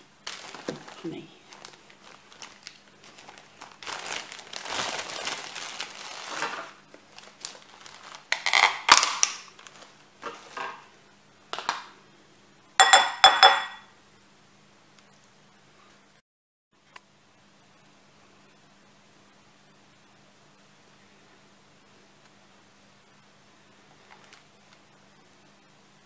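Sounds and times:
plastic bag crinkling: 0:00.1 - 0:10.8, 0:24.0 - 0:24.5
metal spoon clinking against jar: 0:12.8 - 0:13.8.

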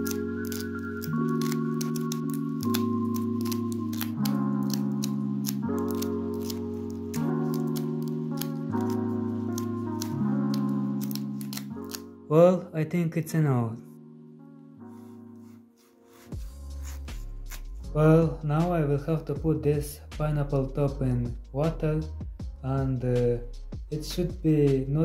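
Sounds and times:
leaves snapping and tearing: 0:00.0 - 0:12.1
background music chords: 0:00.0 - 0:25.0.

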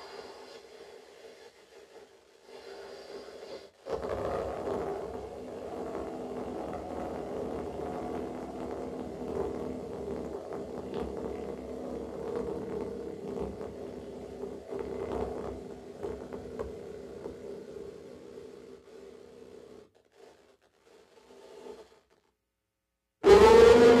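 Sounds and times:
scratchy scrapes and squeaks: 0:18.7 - 0:22.3.

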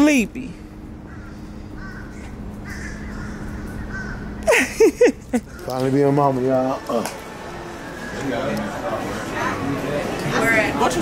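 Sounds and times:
low outdoor hum: 0:00.0 - 0:11.0
crow cawing: 0:01.0 - 0:04.5, 0:05.4 - 0:05.8.

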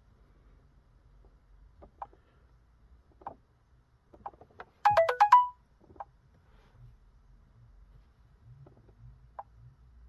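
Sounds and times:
electronic notification jingle: 0:04.9 - 0:05.6.

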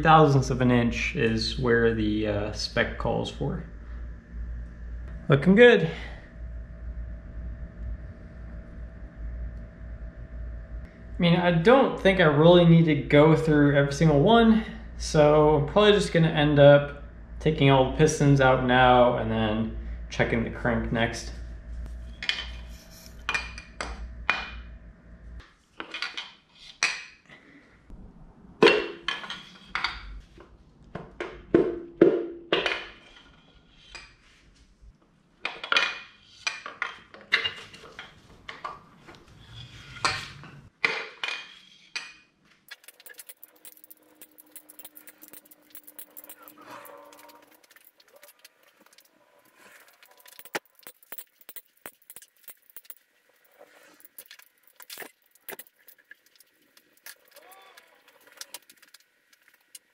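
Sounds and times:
metal engine parts clanking: 0:42.7 - 0:59.9.

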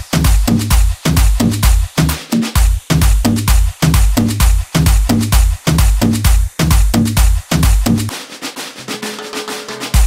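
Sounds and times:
heavy kick drum: 0:00.0 - 0:08.2, 0:09.0 - 0:10.0
snare-like drum hits: 0:00.0 - 0:10.0.

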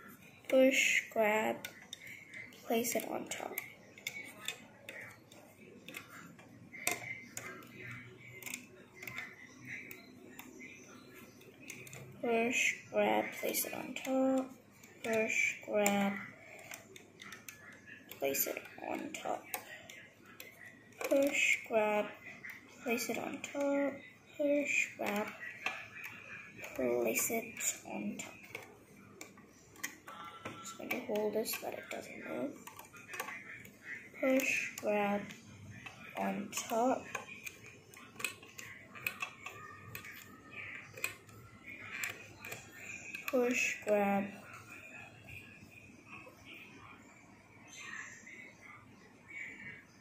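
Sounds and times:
loom hook clicking on plastic pegs: 0:00.5 - 0:10.6, 0:11.4 - 0:44.4.

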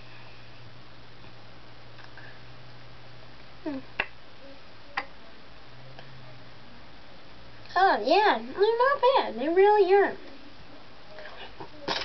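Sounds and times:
person humming: 0:03.6 - 0:04.6.

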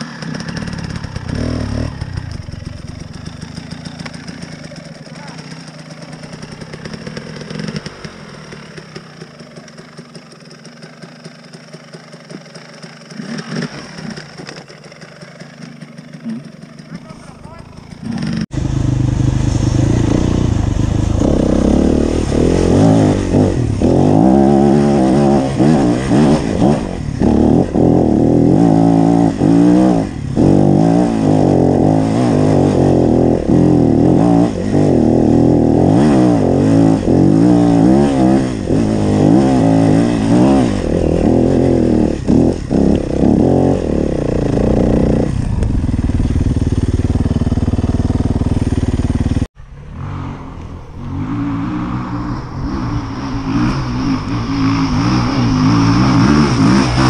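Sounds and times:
another dirt bike engine: 0:00.0 - 0:57.0
dirt bike engine revving: 0:00.0 - 0:57.0.

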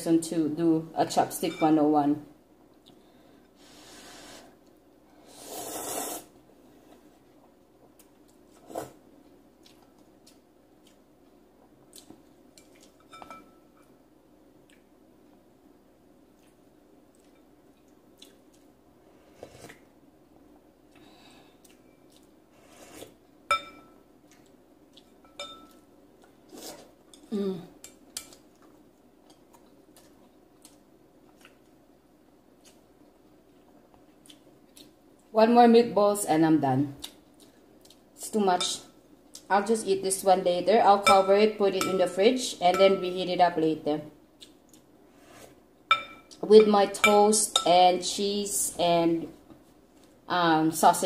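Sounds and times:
slurping noodles: 0:05.3 - 0:06.3
chopsticks clinking on glass bowl: 0:25.1 - 0:25.8.

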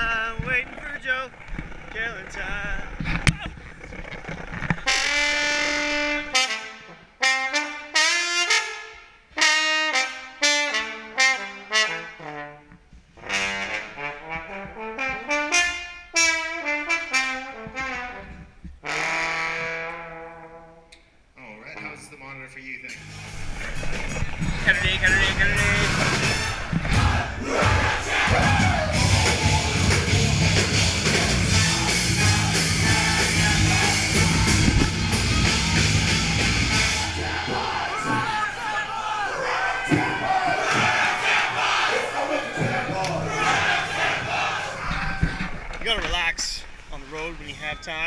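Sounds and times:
live metal band with horns: 0:04.8 - 0:08.7, 0:24.6 - 0:37.9
brass instrument notes: 0:04.8 - 0:20.9, 0:24.7 - 0:38.1
crowd noise: 0:22.9 - 0:48.0
people yelling: 0:25.5 - 0:45.7.

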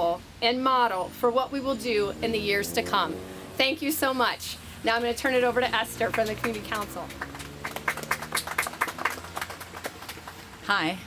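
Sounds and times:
small group applauding: 0:06.1 - 0:10.7.

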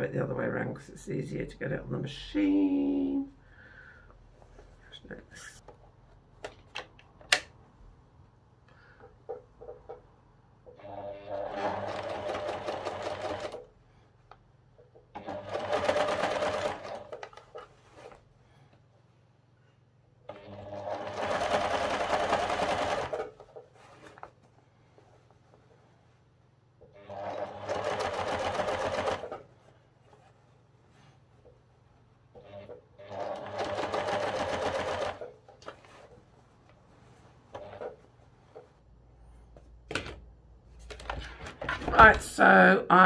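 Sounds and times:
electric sewing machine stitching: 0:10.7 - 0:13.7, 0:15.1 - 0:17.3, 0:20.3 - 0:23.4, 0:26.9 - 0:29.5, 0:32.4 - 0:35.4.

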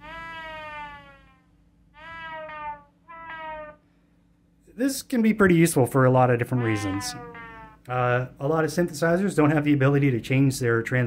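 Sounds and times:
synthesizer notes sliding down: 0:00.0 - 0:03.8.

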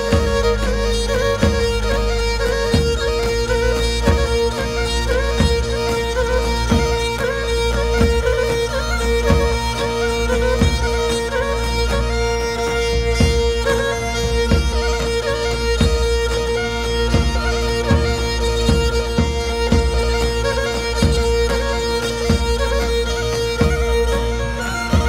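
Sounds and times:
bowed lyra with drone: 0:00.0 - 0:25.0
drum strokes: 0:00.0 - 0:25.0.

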